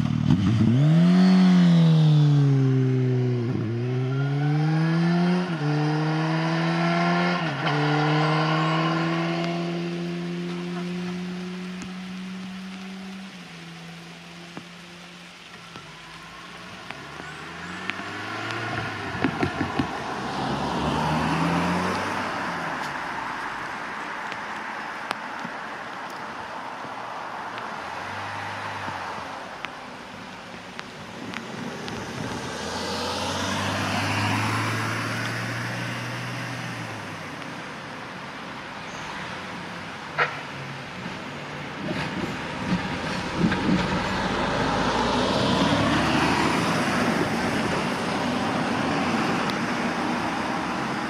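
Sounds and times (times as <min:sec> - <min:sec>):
motorcycle engine accelerating: 0:00.0 - 0:12.6
car passing by: 0:00.1 - 0:51.0.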